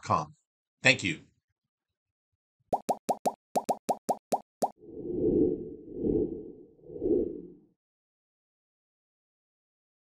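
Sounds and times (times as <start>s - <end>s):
low whoosh: 4.8s - 7.7s.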